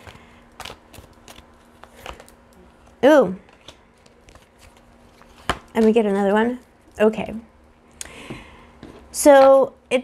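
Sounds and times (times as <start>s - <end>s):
cards being shuffled: 0.0s - 6.0s.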